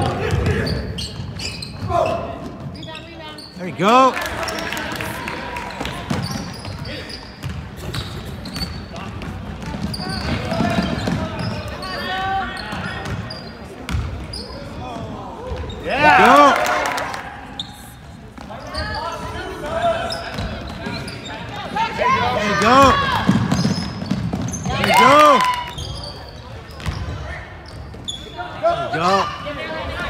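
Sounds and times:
basketball bouncing on wooden floor: 7.4 - 11.6, 22.8 - 24.9.

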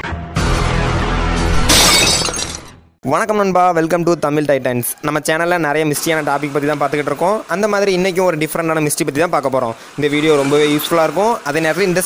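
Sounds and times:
glass shattering crash effect: 1.6 - 2.8.

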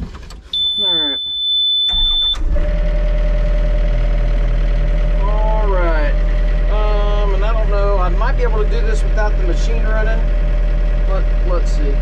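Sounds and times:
diesel engine starting and idling: 0.0 - 12.0
high warning beep: 0.5 - 2.4.

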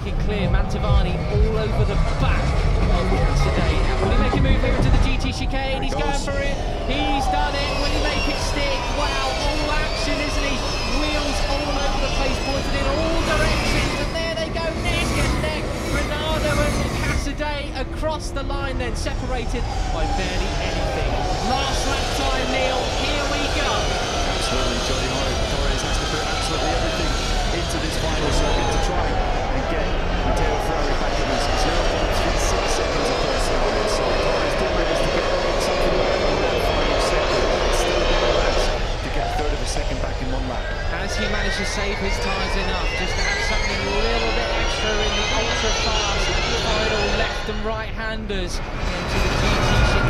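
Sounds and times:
electric motorcycles whining: 0.0 - 17.4, 18.4 - 47.7
trackside noise: 0.0 - 50.0.

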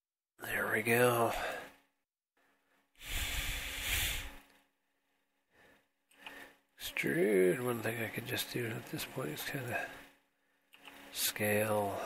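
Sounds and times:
noisy breathing out: 3.0 - 4.5.

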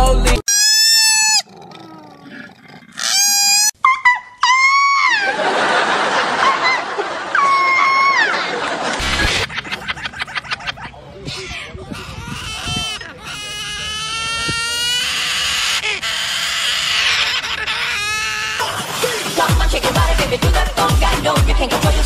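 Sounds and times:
cockatoos squawking and screeching: 0.5 - 19.3.

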